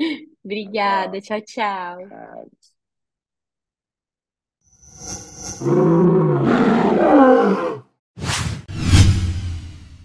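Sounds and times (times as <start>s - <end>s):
whooshes: 8.2s - 10.0s.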